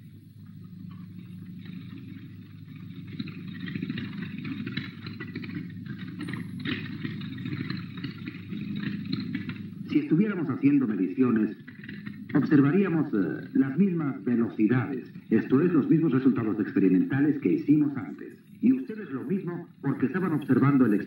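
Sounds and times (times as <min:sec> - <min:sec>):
motor cart rumbling: 0:00.0 - 0:21.0.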